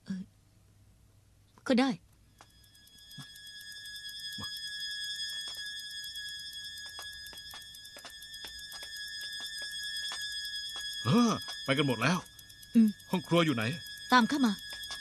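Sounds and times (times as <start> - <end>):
eerie synthesizer music: 2.4 - 15.0.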